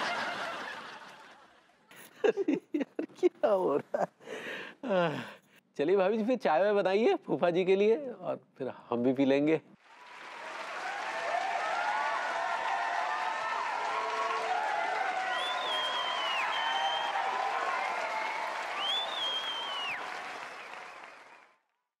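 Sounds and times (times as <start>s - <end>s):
audience applause and cheering: 9.8s - 21.6s
long whistles: 15.2s - 17.5s, 18.2s - 20.8s.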